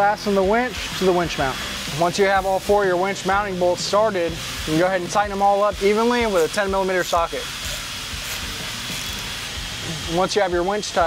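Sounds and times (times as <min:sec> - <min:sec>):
workshop background hiss: 0:00.0 - 0:11.0.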